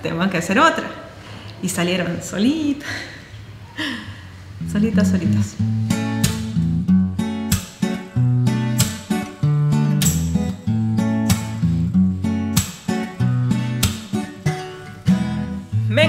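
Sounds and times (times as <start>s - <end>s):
acoustic guitar strumming chords: 4.6s - 16.0s.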